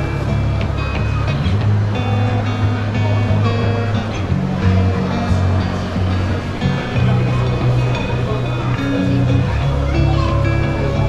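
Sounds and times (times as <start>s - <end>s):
background music with deep bass: 0.0s - 11.0s.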